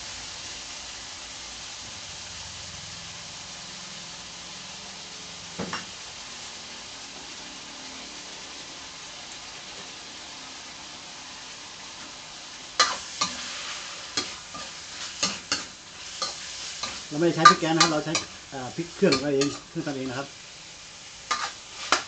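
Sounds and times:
meat sizzling in hot oil: 0.0 - 22.0
metal ladle scraping a wok: 12.8 - 20.0, 21.3 - 22.0.

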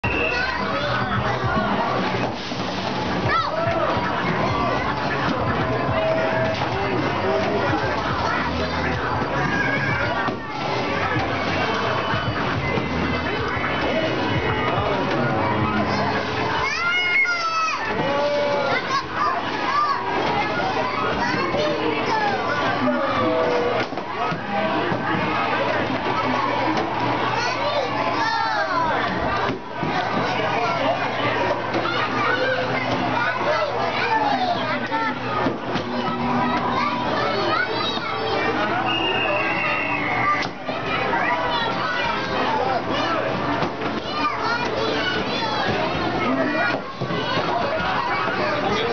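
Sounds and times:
children's voices: 0.0 - 2.3, 3.0 - 48.9.

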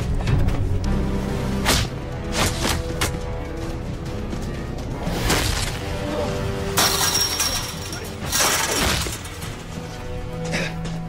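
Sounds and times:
film score music: 0.0 - 11.0.

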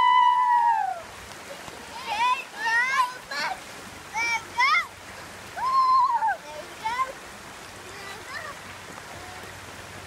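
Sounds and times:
river running over rocks: 0.0 - 10.0.

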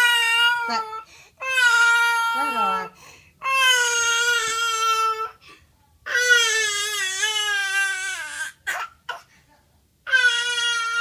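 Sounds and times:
baby crying: 0.0 - 5.4, 6.1 - 9.3, 10.1 - 11.0.

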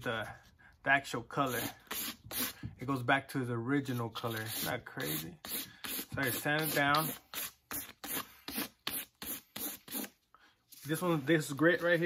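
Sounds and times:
sandpaper rubbing on leather boot: 3.9 - 10.1.

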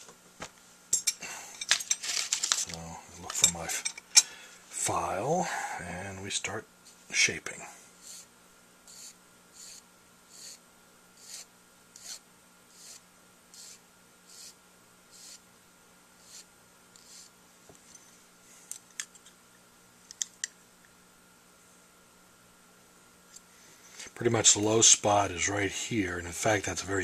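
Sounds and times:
file rasping on metal: 8.0 - 8.3, 8.9 - 10.6, 11.2 - 13.0, 13.6 - 15.4, 16.2 - 17.3.

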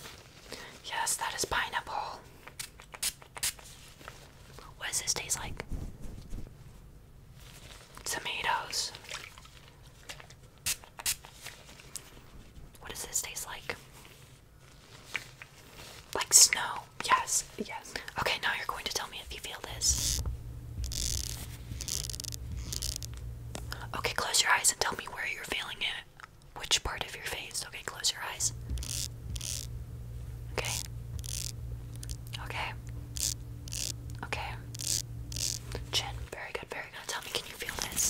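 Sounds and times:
rustling handling noise: 0.0 - 1.0, 3.6 - 4.7, 5.5 - 8.1, 11.3 - 12.7, 13.8 - 25.2
person whispering: 0.8 - 2.2, 4.6 - 5.6, 8.0 - 9.0, 12.8 - 13.8, 16.2 - 20.2, 23.6 - 29.0, 30.5 - 30.9, 32.3 - 32.9, 33.7 - 34.8, 35.7 - 38.0.

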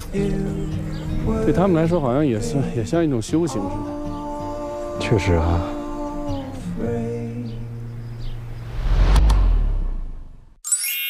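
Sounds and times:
background music: 0.0 - 8.5
low rumbling whoosh: 8.3 - 10.6.

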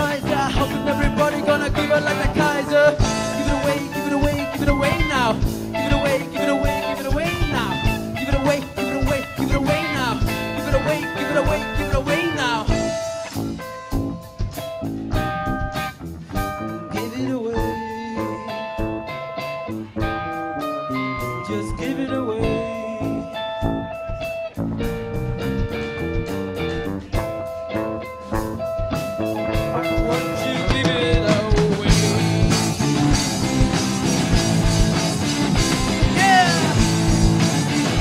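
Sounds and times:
drum beat: 0.0 - 16.7, 23.7 - 38.0
bass: 0.0 - 38.0
electric guitar: 0.0 - 38.0.

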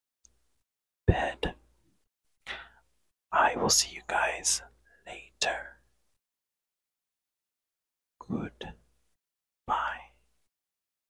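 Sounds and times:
man whispering: 1.1 - 1.6, 2.5 - 5.9, 8.2 - 8.8, 9.7 - 10.3.

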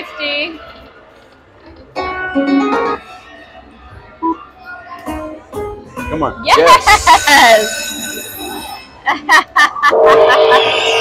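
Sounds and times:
slot machine bell-like chimes: 7.0 - 9.0.

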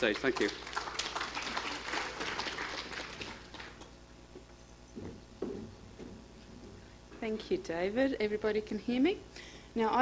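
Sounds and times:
audience applauding: 0.0 - 3.9.

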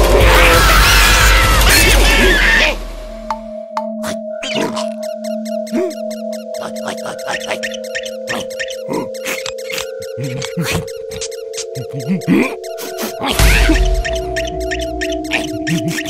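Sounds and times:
cartoon background music: 0.0 - 16.0
cartoon squeaks: 4.0 - 16.0
gibberish character cries: 5.7 - 16.0.

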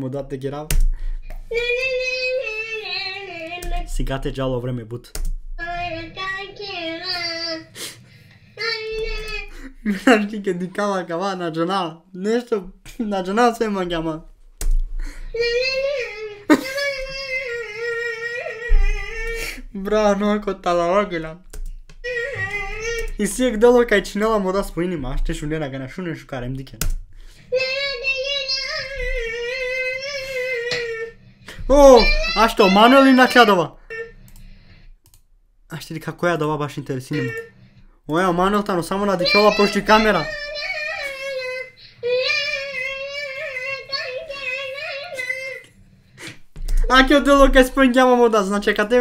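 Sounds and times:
child singing long notes: 1.5 - 3.9, 27.6 - 33.4, 39.2 - 45.6.

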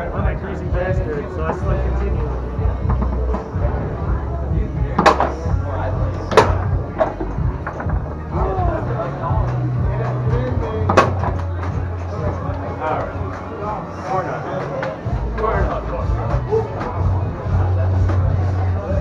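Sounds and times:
background music: 0.0 - 19.0
chatter: 0.0 - 19.0
foosball ball and rods clacking: 5.0 - 5.4, 6.3 - 8.0.

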